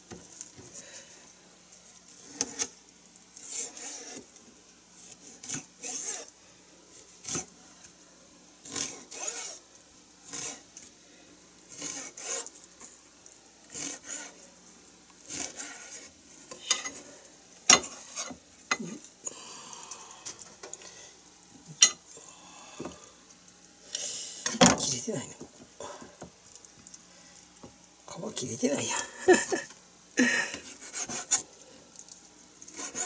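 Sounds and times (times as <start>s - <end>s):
knife scraping through fish: 2.2s - 2.8s, 3.4s - 4.2s, 5.0s - 6.3s, 8.6s - 9.6s, 10.3s - 10.7s, 11.7s - 12.5s, 13.7s - 14.4s, 15.3s - 16.1s, 30.6s - 31.5s, 32.7s - 33.0s.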